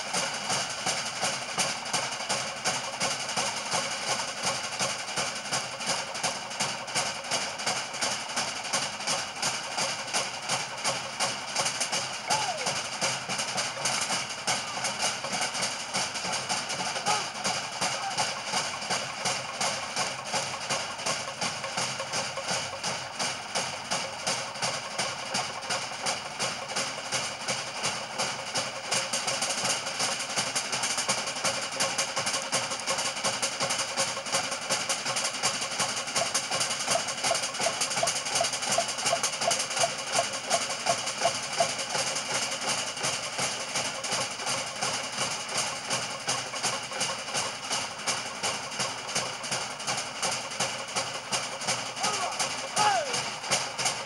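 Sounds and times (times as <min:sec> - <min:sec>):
drums playing a fast beat: 0:00.0 - 0:54.0.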